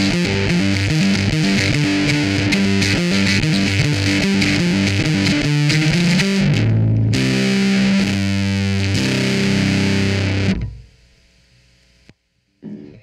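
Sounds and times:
distorted electric bass: 0.0 - 13.0.

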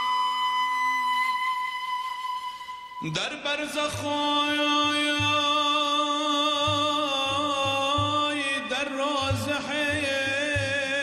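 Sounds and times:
flute-like long note: 0.0 - 3.2.

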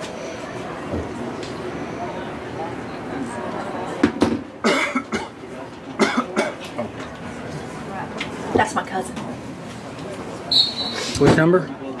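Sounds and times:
murmur of voices: 0.0 - 12.0
person coughing: 4.6 - 5.3, 6.0 - 6.6.

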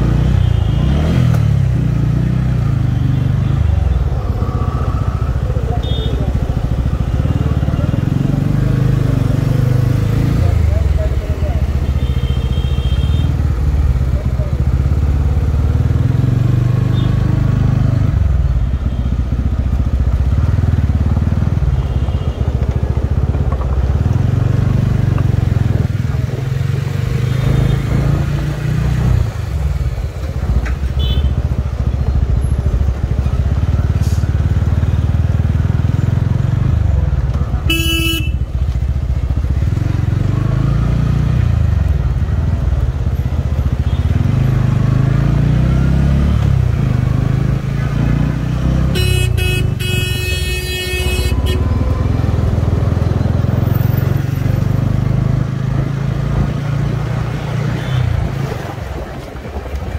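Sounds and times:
motorcycle engine running: 0.0 - 59.9
road and wind noise: 0.0 - 59.9
vehicle horn honking: 31.0 - 31.4, 37.6 - 38.4, 48.9 - 52.2.

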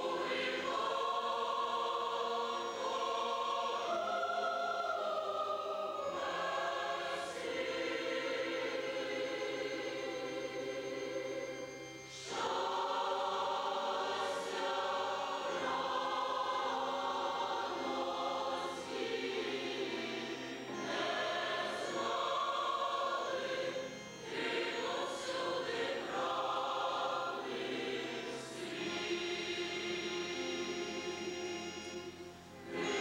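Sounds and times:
choir singing a hymn: 0.0 - 33.0
keyboard accompaniment: 0.0 - 33.0.

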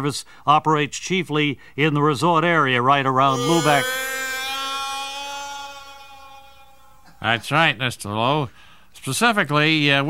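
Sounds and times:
held organ note: 3.3 - 7.4.

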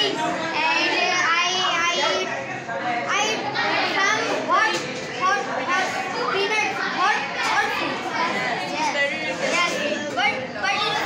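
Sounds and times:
boy speaking: 0.0 - 2.4, 3.1 - 11.0
children's voices: 0.0 - 11.0.

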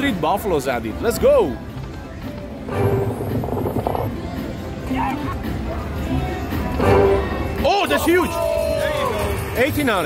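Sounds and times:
slot machine music and effects: 2.4 - 4.8.

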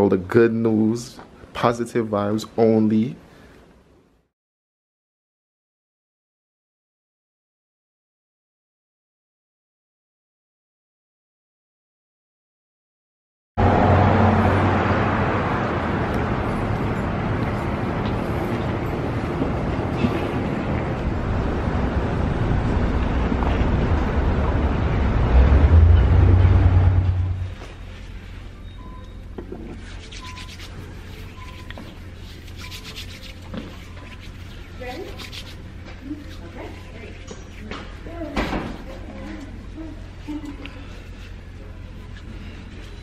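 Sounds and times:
faint short beeps: 28.5 - 29.3.

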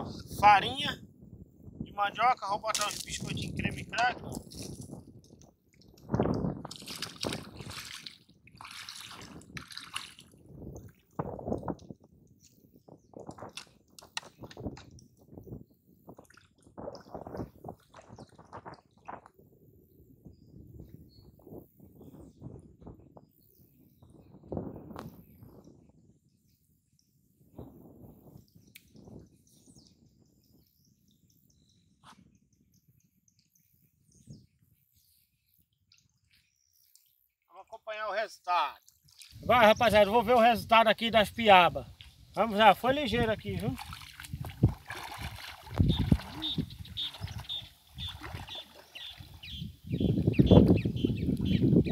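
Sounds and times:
water sloshing and splashing: 5.7 - 11.9, 16.1 - 19.3, 38.8 - 39.5, 43.2 - 49.6
water dripping: 43.4 - 49.6.

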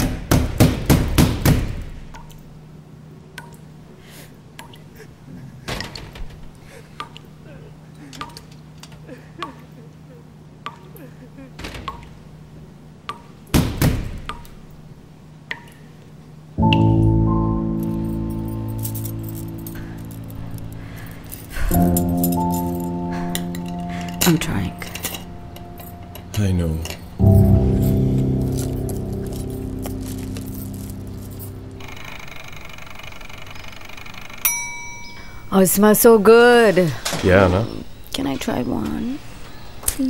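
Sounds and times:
banging on a door: 0.0 - 2.0, 13.6 - 14.3
water dripping from tap: 3.4 - 3.6, 15.5 - 15.8
low steady hum: 14.2 - 40.0
low sustained orchestral chords: 16.6 - 34.4
faint metallic clinks: 17.8 - 28.0, 34.3 - 35.6.

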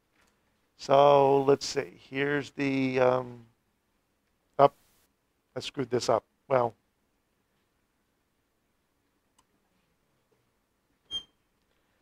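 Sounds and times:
marker squeaking on plastic: 11.1 - 11.4.

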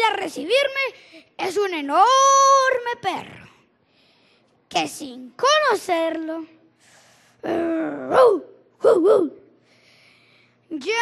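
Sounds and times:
man imitating dog barking: 7.7 - 9.4.

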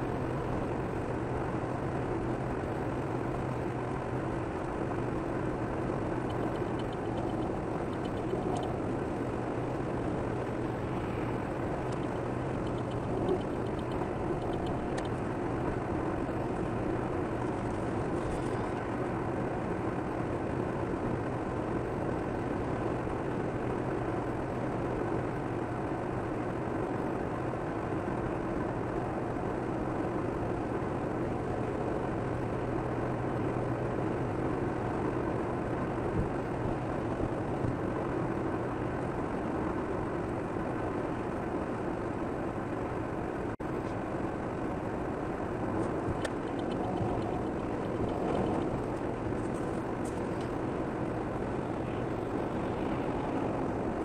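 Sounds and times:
car tyres and engine drone: 0.0 - 54.0.

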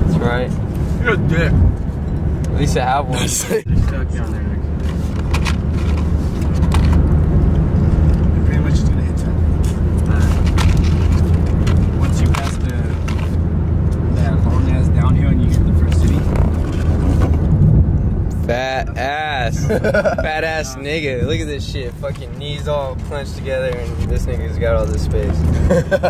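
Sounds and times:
car road and engine drone: 0.0 - 26.0.

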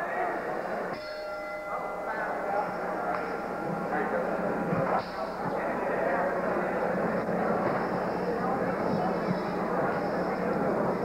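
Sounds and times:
boxing ring bell: 0.9 - 5.7.

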